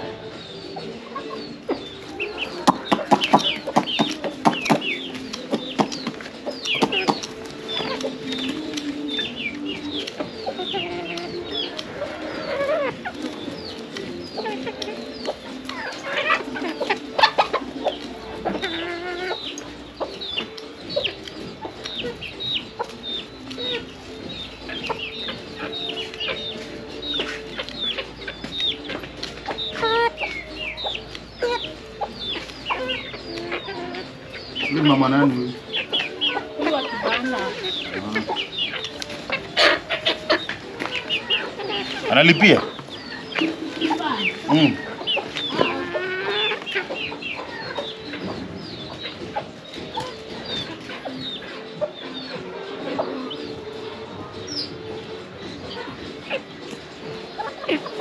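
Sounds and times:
chickens clucking: 0.0s - 58.0s.

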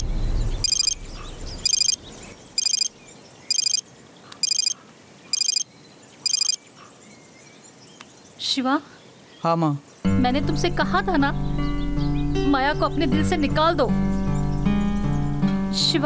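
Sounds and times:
background music: 0.0s - 1.6s, 10.0s - 16.0s
trilling phone ringtone: 0.6s - 1.0s, 1.6s - 2.0s, 2.6s - 2.9s, 3.5s - 3.8s, 4.4s - 5.6s, 6.3s - 6.6s.

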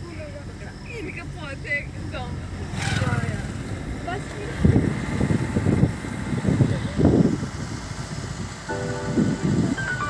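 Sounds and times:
car running rumble: 0.0s - 10.0s.

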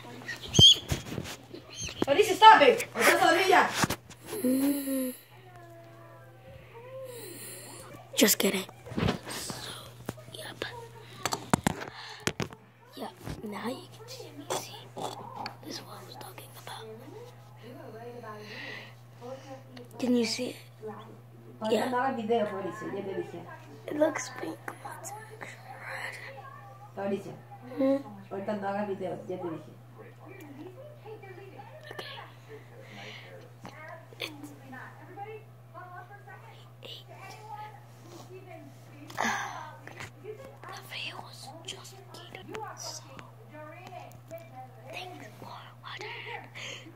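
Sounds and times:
child whispering: 4.3s - 5.4s, 7.0s - 8.7s, 9.3s - 11.3s, 13.0s - 17.0s, 24.0s - 26.4s, 36.6s - 37.2s, 40.7s - 43.0s, 44.9s - 46.4s
whispery speech: 4.4s - 11.8s, 12.4s - 18.5s, 36.0s - 46.6s.

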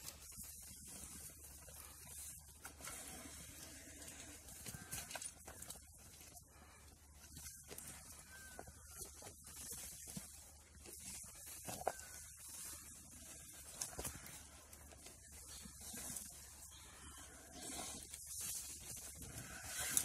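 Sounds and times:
faint chirps: 0.1s - 20.0s.

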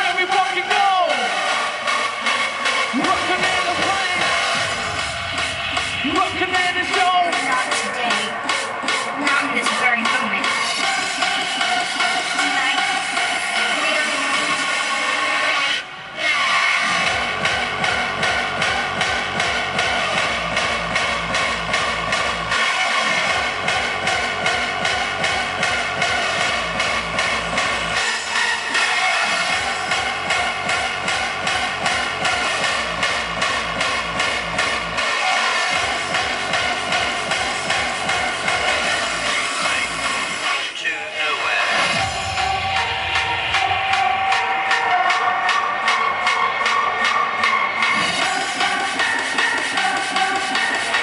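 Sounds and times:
loud dance music: 0.0s - 51.0s
pounding kick drum: 17.1s - 22.5s.

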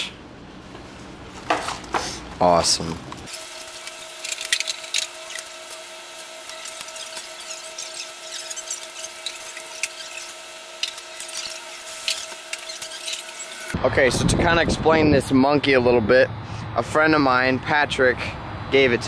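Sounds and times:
steady machine hum: 0.0s - 14.4s.

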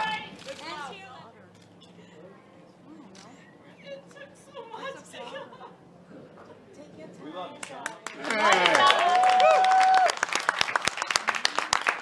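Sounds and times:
audience applauding: 7.8s - 12.0s.

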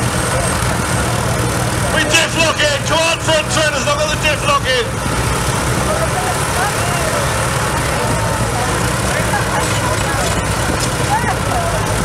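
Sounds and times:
truck and tractor engines rumbling: 0.0s - 12.0s.

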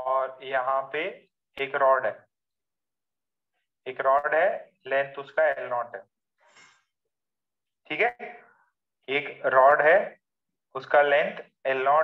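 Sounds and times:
man speaking: 0.0s - 2.3s, 3.8s - 6.1s, 7.8s - 12.0s.

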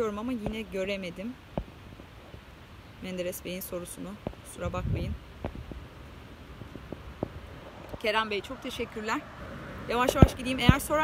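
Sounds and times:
outdoor background rumble: 0.0s - 11.0s.

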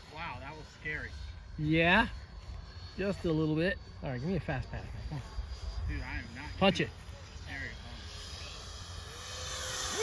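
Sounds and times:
electric ducted fans whining: 0.0s - 10.0s.

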